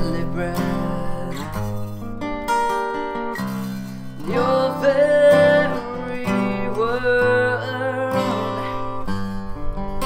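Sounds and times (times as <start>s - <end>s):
man singing: 0.0s - 1.9s, 4.2s - 9.1s
acoustic guitar strummed: 0.0s - 10.0s.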